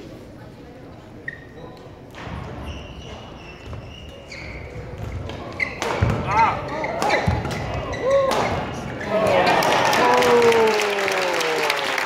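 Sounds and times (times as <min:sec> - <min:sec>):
murmur of voices: 0:00.0 - 0:12.0
shoes squeaking on floor: 0:01.2 - 0:09.2
racket hitting shuttlecock: 0:05.0 - 0:08.6.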